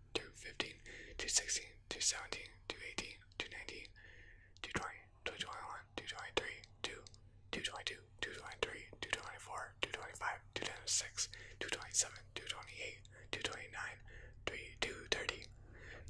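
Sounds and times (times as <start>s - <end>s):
man whispering: 0.0s - 16.0s.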